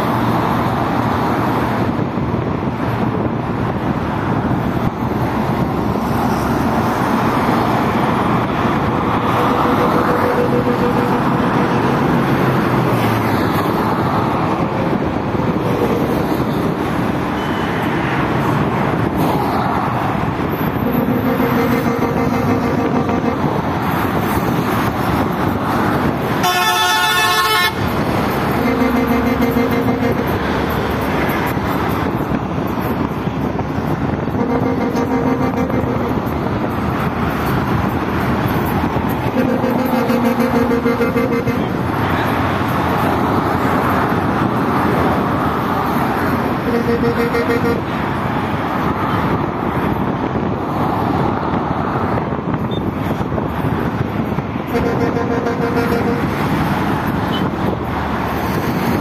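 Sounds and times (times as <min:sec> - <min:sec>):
road traffic noise: 0:00.0 - 0:59.0
shrill horn blast: 0:08.9 - 0:12.4, 0:20.6 - 0:24.1, 0:26.3 - 0:31.0, 0:34.2 - 0:36.8, 0:39.2 - 0:41.9, 0:46.5 - 0:48.0, 0:54.7 - 0:56.7
vehicle horn toots: 0:09.2 - 0:12.0, 0:20.7 - 0:23.7, 0:26.4 - 0:30.7, 0:34.3 - 0:36.4, 0:39.2 - 0:41.8, 0:46.6 - 0:48.0, 0:54.7 - 0:56.4, 0:57.3 - 0:57.6.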